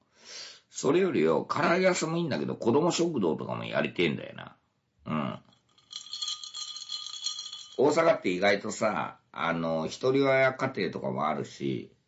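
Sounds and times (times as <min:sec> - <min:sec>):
short vocal sound: 0:05.1 - 0:05.4.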